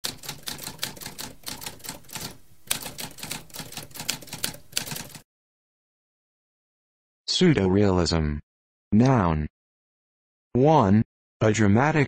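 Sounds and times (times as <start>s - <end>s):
typewriter keys clacking: 0.0s - 5.2s.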